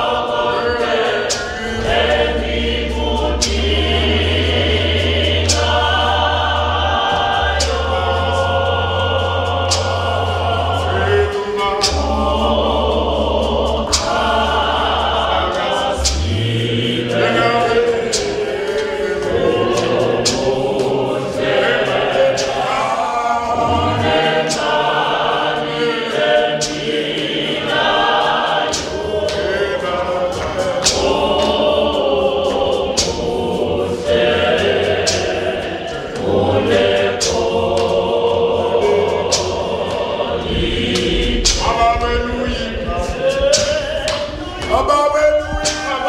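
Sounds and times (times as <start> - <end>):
congregation singing a hymn: 0.0 - 46.0
sharp beats: 0.0 - 46.0.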